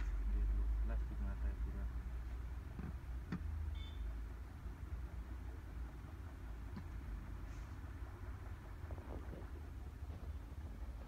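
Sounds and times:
low background rumble: 0.0s - 11.0s
short high beep: 3.7s - 4.1s.

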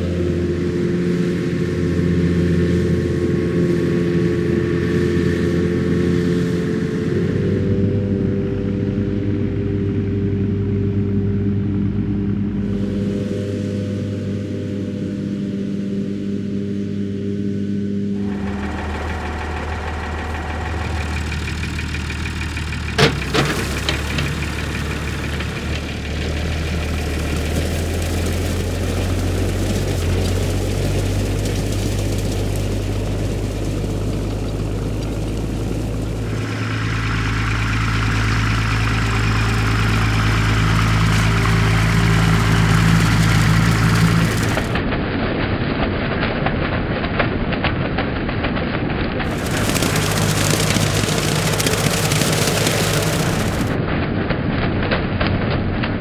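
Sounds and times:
tractor diesel engine running: 0.0s - 15.8s, 16.8s - 45.0s, 49.2s - 54.0s
steady hum: 0.0s - 44.8s.

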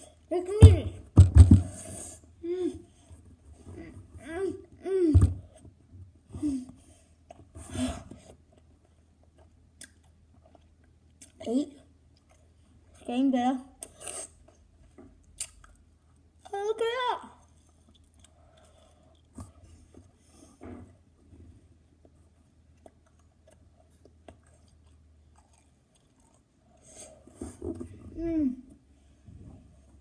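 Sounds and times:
person chewing sticky candy: 8.2s - 13.0s, 13.8s - 16.5s, 17.4s - 20.2s, 21.9s - 27.4s
wet mouth clicks: 15.3s - 15.8s.

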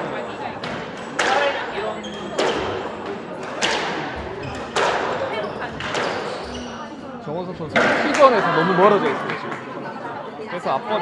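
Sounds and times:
squash ball strikes: 0.6s - 1.6s, 3.4s - 6.3s, 7.7s - 8.2s
shoes squeaking on wooden floor: 1.8s - 2.9s, 4.2s - 7.0s.

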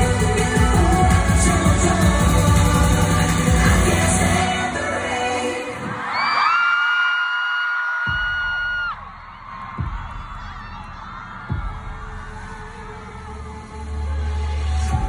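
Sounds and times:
deep bass thumps: 8.1s - 9.1s, 9.8s - 12.8s.

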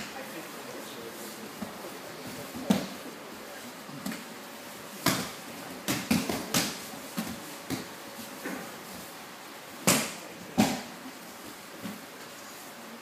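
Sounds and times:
bodies hitting mats: 4.9s - 8.7s, 9.8s - 11.0s.

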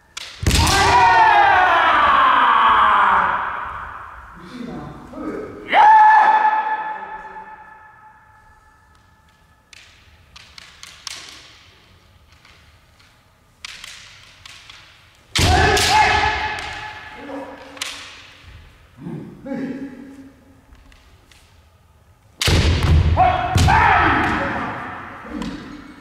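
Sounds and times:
bamboo swords clacking: 0.0s - 1.0s, 8.9s - 18.7s
people shouting in echoing hall: 0.5s - 9.4s, 15.3s - 20.7s, 22.8s - 26.0s.

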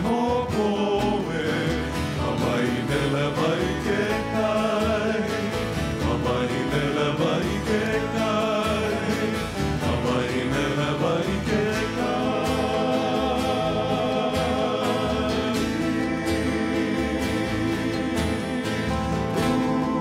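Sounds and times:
acoustic guitar: 0.0s - 20.0s
men singing together: 0.0s - 20.0s
ukuleles: 0.0s - 20.0s
upright bass: 0.0s - 20.0s.

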